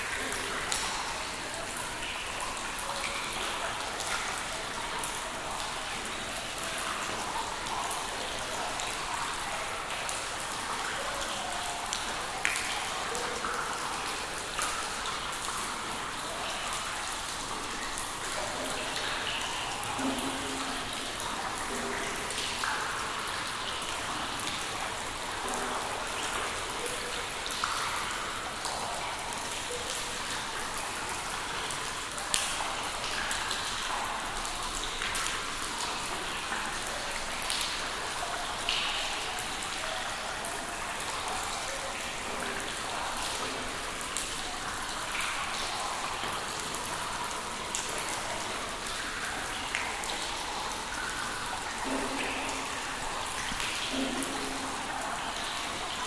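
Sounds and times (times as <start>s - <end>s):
water dripping in a cave: 0.0s - 56.0s.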